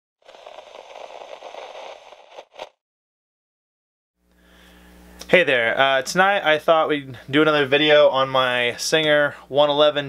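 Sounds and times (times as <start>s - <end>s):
crackling static noise: 0.2s - 2.8s.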